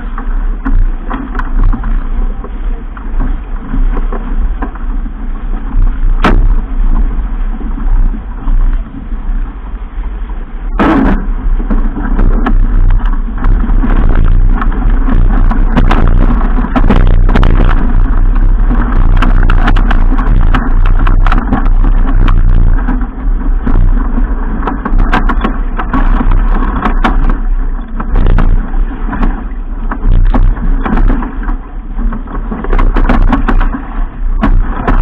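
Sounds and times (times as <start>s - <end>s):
choppy water rushing along hull: 0.0s - 35.0s
wind buffeting microphone: 0.0s - 35.0s.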